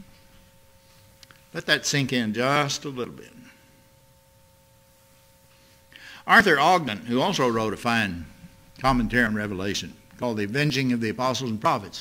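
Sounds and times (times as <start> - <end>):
faint steady tones: 0.0 - 12.0.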